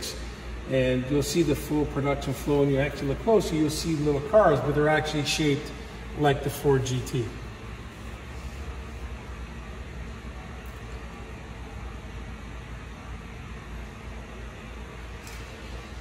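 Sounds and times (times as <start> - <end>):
ventilation rumble and hiss: 0.0 - 16.0.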